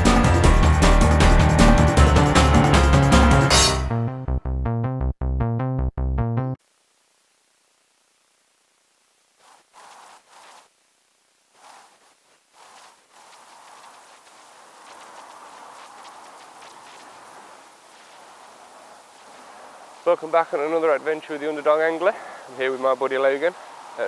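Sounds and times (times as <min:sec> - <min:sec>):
short rustles: 0:09.4 - 0:10.7, 0:11.5 - 0:20.1
river rushing: 0:14.4 - 0:24.0.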